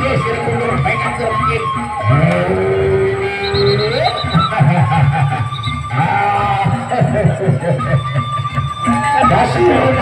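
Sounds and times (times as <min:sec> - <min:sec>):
percussion music: 0:00.0 - 0:10.0
long held call rising in pitch: 0:01.8 - 0:04.6, 0:05.2 - 0:06.6.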